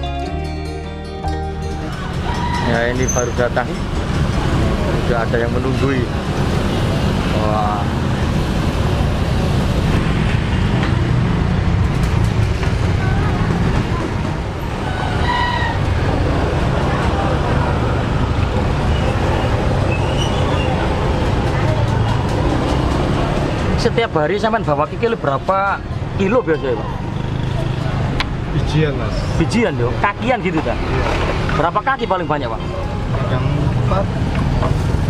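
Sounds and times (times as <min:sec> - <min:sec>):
low traffic rumble: 0:00.0 - 0:35.0
motorbike engines passing: 0:01.6 - 0:35.0.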